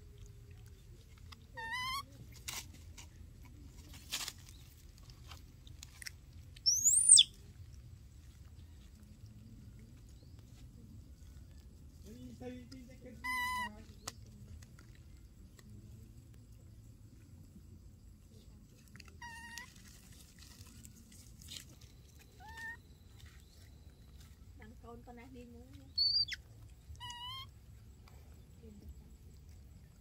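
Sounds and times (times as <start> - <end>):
baby monkey high call: 1.6 - 2.1, 6.6 - 7.4, 13.2 - 13.7, 19.2 - 19.7, 22.4 - 22.8, 25.9 - 27.5
high whistle-like animal call: 6.7 - 7.4, 26.0 - 26.4.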